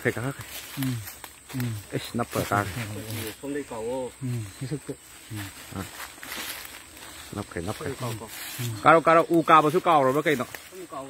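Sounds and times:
people talking: 0:00.0 - 0:06.0, 0:07.3 - 0:11.0.

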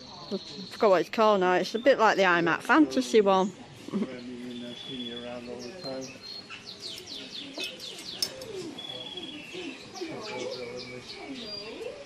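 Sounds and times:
faint voices: 0:00.0 - 0:12.0
small birds chirping: 0:00.0 - 0:12.0.

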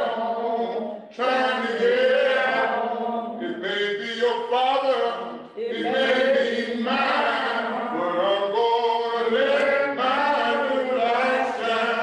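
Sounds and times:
voices singing slow chant: 0:00.0 - 0:12.0.

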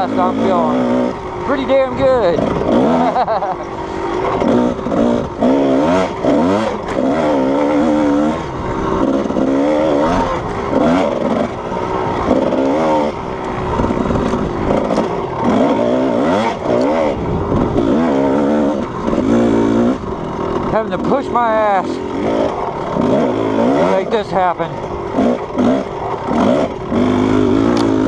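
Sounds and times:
dirt bike engine revving: 0:00.0 - 0:28.0.

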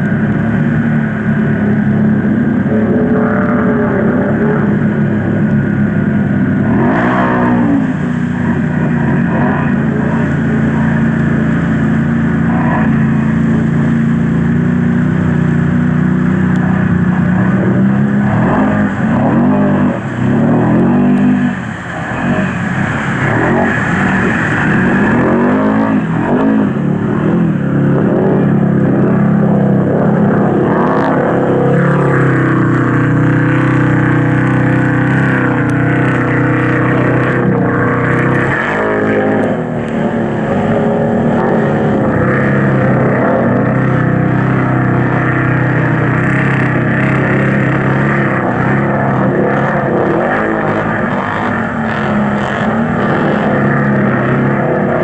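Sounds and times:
atv engines revving: 0:00.0 - 0:55.0
water splashing: 0:00.0 - 0:55.0.

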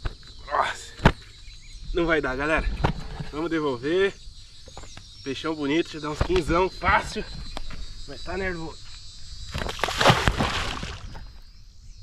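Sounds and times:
fish splashing in water: 0:09.5 - 0:11.2.

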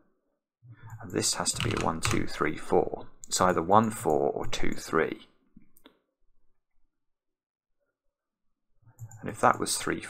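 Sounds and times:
person speaking: 0:01.0 - 0:05.0
computer mouse clicks: 0:08.9 - 0:09.7.

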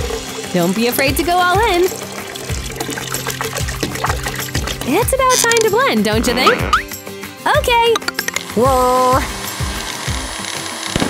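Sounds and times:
background music with steady beat: 0:00.0 - 0:11.0
milk pouring into a glass jar: 0:01.8 - 0:05.6.

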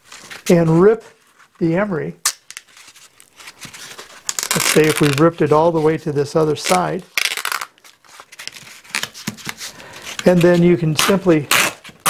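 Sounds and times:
cloth tearing rasp: 0:04.3 - 0:05.3, 0:06.6 - 0:07.7, 0:10.2 - 0:12.0.

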